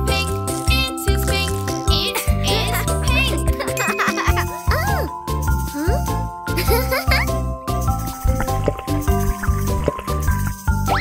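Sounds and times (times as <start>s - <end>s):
children's song backing music: 0.0s - 11.0s.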